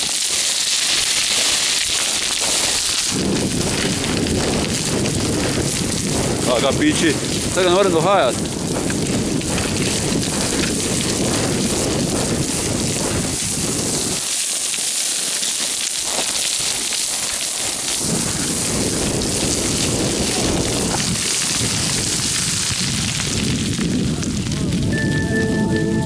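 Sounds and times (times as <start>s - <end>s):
boots crunching on scree: 0.8s - 12.9s
wind buffeting microphone: 1.9s - 14.4s, 17.5s - 26.0s.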